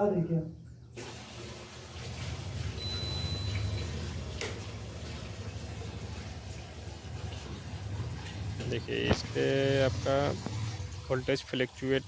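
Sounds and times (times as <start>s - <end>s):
washing machine humming: 0.0s - 12.0s
electronic beep: 2.8s - 3.8s.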